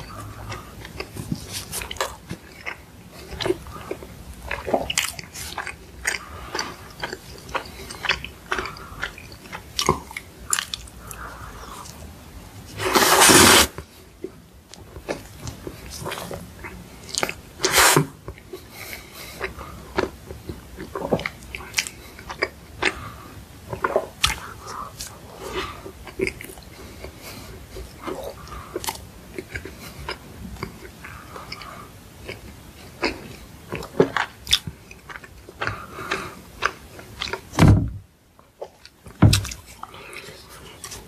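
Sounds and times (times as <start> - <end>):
chewing soft bread: 0.0 - 37.6, 38.4 - 41.0
dull thump: 37.6 - 38.0.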